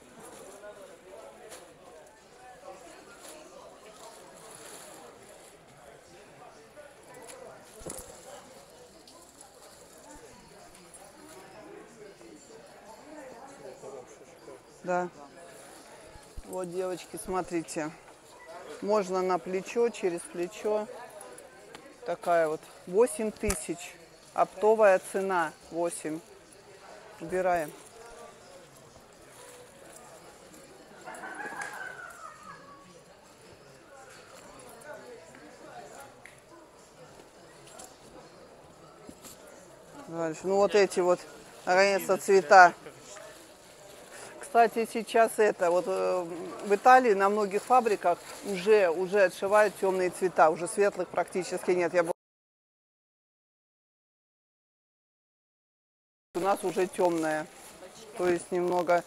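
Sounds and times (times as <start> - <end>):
faint voices talking: 0.0 - 52.0.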